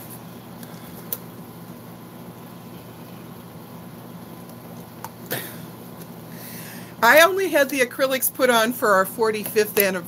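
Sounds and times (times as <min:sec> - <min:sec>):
low hum and hiss: 0:00.0 - 0:10.0.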